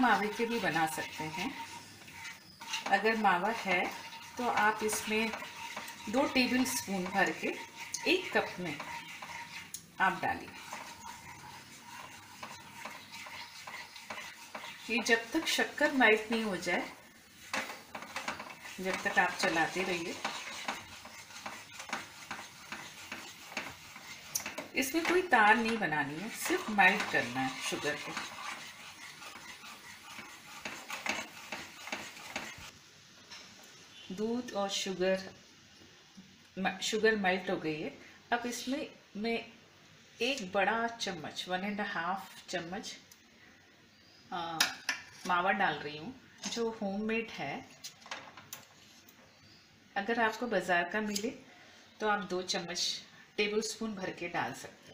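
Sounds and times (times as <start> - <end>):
plastic spatula scraping a pan: 0.0 - 32.7
faint syrup simmering: 0.0 - 32.8
mixture sizzling: 0.0 - 32.9.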